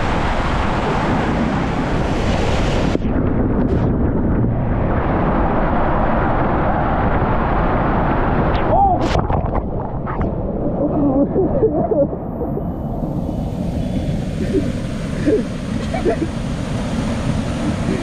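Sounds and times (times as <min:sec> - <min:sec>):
rushing water: 0:00.0 - 0:03.8, 0:04.6 - 0:18.0
wind buffeting microphone: 0:00.0 - 0:18.0
water splashing: 0:08.6 - 0:11.9.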